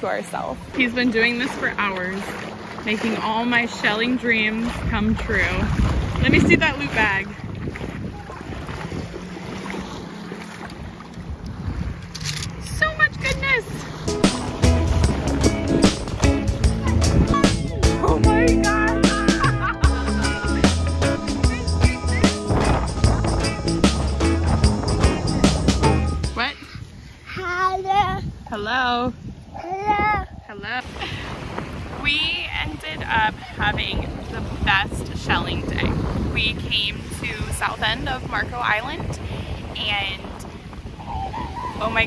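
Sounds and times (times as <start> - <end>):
shore water: 0.0 - 42.0
wind on microphone: 0.1 - 42.0
music with steady beat: 14.1 - 26.4
toddler crying out: 29.6 - 30.3.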